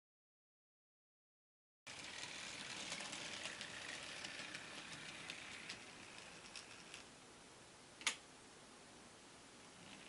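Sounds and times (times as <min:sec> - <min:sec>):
model train motor whirring: 0:01.9 - 0:07.1, 0:09.8 - 0:10.0
wheels clicking on rails: 0:01.9 - 0:07.1.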